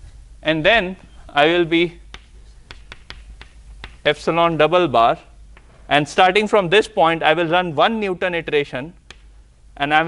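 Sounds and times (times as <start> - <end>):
chalk tapping on blackboard: 2.0 - 4.2, 9.1 - 9.3.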